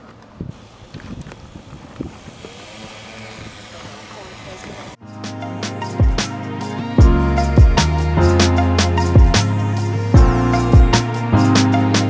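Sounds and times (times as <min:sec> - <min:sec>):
drone rotors whirring: 0:00.2 - 0:05.0
music: 0:05.0 - 0:12.0.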